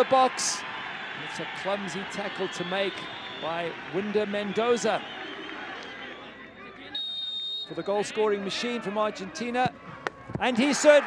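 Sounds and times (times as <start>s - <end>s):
murmur of crowd chatter: 5.4s - 11.0s.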